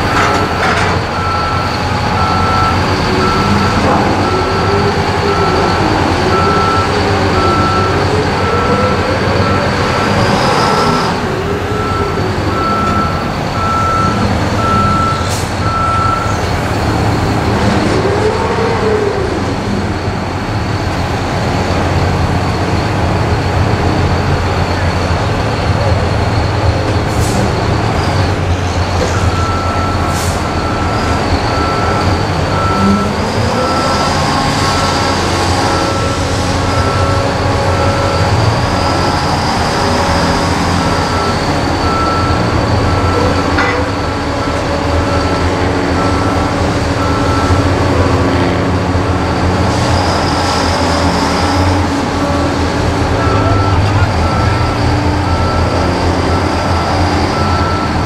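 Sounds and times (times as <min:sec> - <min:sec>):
heavy forklift engines running: 0:00.0 - 0:58.0
reversing alarm beeping: 0:00.0 - 0:58.0.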